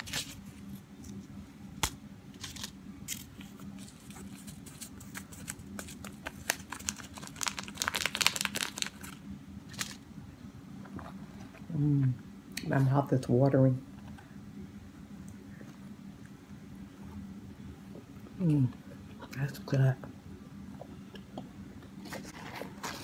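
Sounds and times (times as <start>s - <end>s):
paper crinkling and crackling: 0.0s - 1.2s, 2.4s - 10.0s, 22.0s - 23.0s
paper packet tearing: 2.4s - 10.0s.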